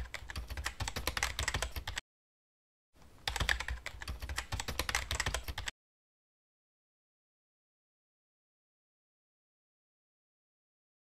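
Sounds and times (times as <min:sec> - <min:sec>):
rapid keyboard keystroke clicks: 0:00.0 - 0:02.0, 0:03.2 - 0:05.7.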